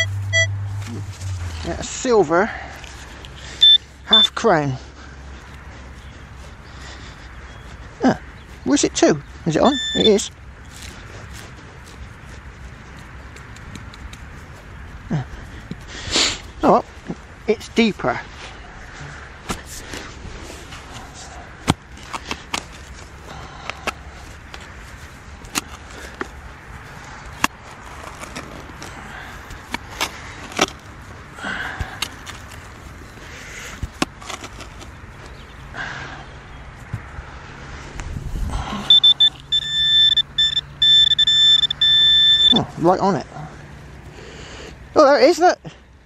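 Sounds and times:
high-pitched detector tone: 0:00.0 - 0:01.4, 0:03.6 - 0:04.4, 0:09.6 - 0:10.3, 0:38.8 - 0:42.7
spade digging into soil: 0:33.8 - 0:34.9.

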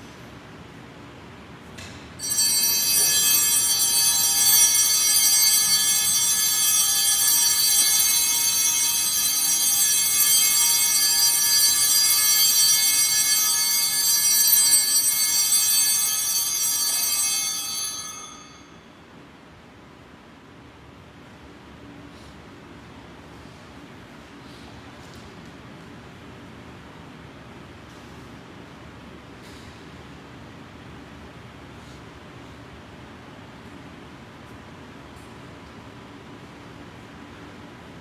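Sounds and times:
small altar bells jangling: 0:02.2 - 0:18.8.

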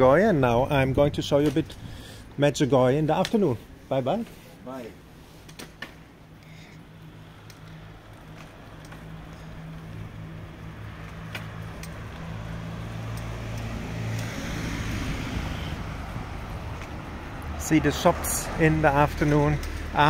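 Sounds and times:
road noise: 0:00.0 - 0:20.0
vehicle engine humming: 0:04.5 - 0:20.0.

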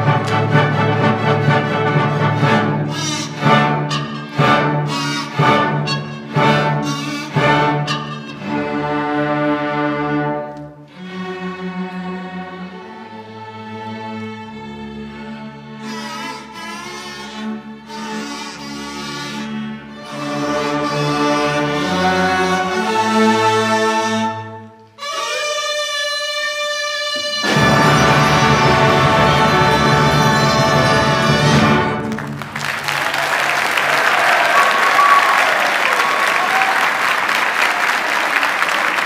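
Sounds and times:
orchestra playing slow chords: 0:00.0 - 0:25.0, 0:27.2 - 0:32.6.

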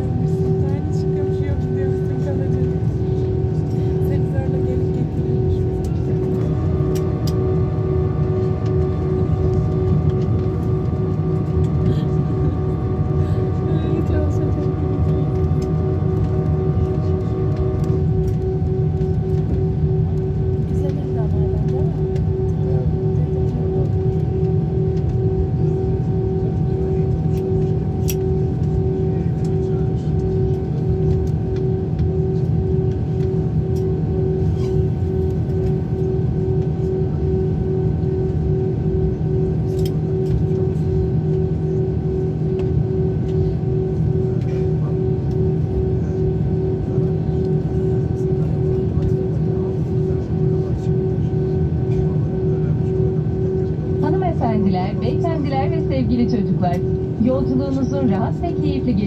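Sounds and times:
aircraft engine rumble: 0:00.0 - 0:59.0
pulsing hum tone: 0:00.0 - 0:59.0.

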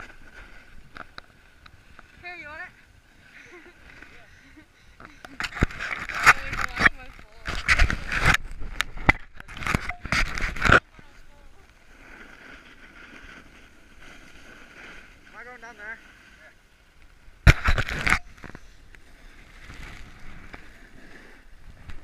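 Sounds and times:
snowboard scraping over snow: 0:10.2 - 0:17.5, 0:19.0 - 0:22.0.

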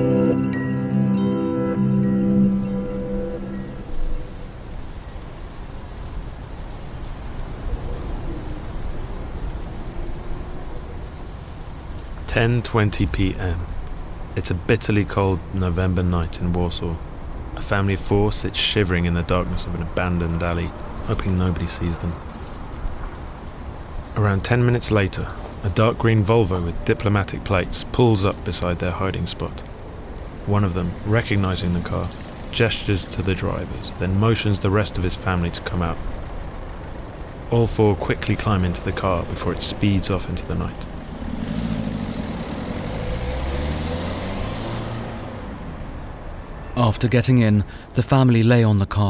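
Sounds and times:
steady rain: 0:02.6 - 0:48.0
car engine driving off: 0:19.1 - 0:46.6.

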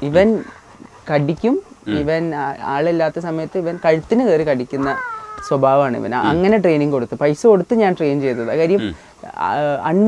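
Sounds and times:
man talking: 0:01.9 - 0:02.1.

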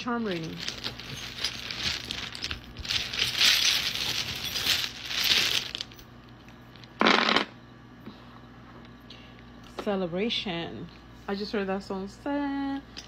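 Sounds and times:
metal charms rattling on wooden table: 0:00.0 - 0:06.1.

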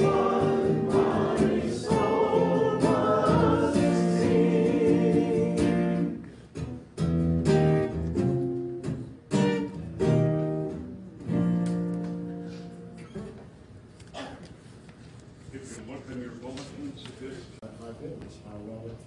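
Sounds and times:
worship singing: 0:00.0 - 0:06.2
strummed guitar chords: 0:00.0 - 0:13.0.

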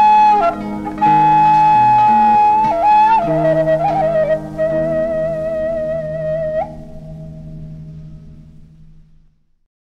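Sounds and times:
bamboo flute note with vibrato: 0:00.0 - 0:07.8
zither strings ringing: 0:00.0 - 0:09.5.

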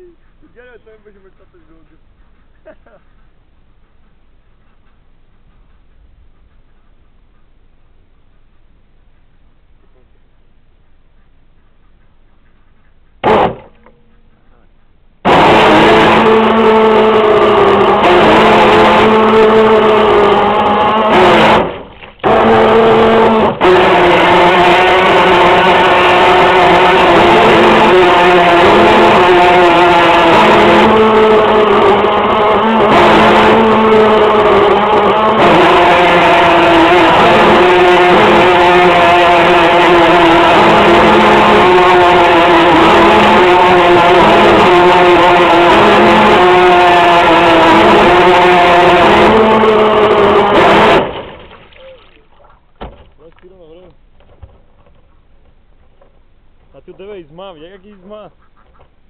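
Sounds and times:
boat motor running: 0:11.8 - 0:59.0.

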